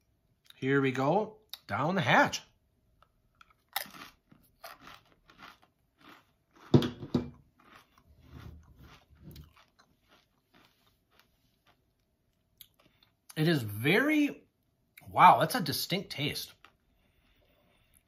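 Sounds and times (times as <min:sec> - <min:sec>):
chip crunching: 0:03.3 - 0:06.8, 0:07.4 - 0:13.0.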